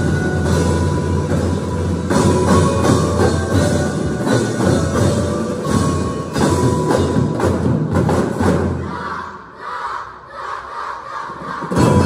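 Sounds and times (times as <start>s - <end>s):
drum and lyre band: 0.0s - 9.6s, 11.1s - 12.0s
crowd cheering and shouting: 8.8s - 12.0s.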